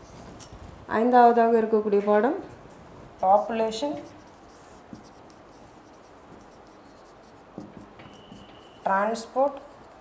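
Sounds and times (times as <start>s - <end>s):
marker writing on whiteboard: 3.2s - 10.0s.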